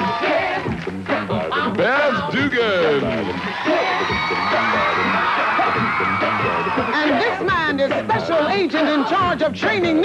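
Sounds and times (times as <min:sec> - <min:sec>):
audience cheering and shouting: 0:00.0 - 0:07.8
theme music: 0:00.0 - 0:08.6.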